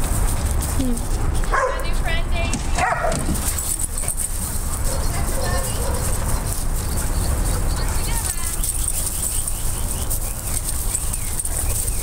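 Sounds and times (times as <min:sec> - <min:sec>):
dog yipping: 0:01.5 - 0:01.9, 0:02.8 - 0:03.3, 0:04.8 - 0:12.0.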